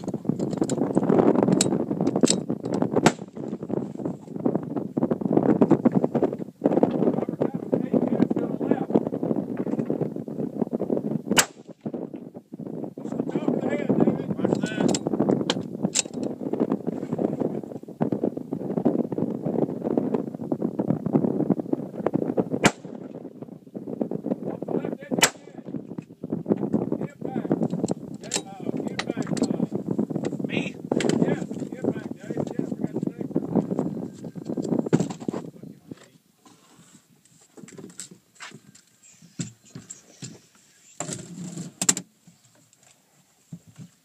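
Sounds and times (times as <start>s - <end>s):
wind rumble on microphone: 0.0s - 44.0s
rifle shots: 11.4s - 11.7s, 22.6s - 23.0s, 25.2s - 25.5s.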